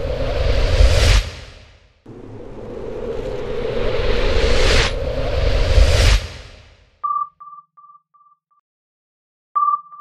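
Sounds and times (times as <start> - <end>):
whoosh: 0.0 - 6.9.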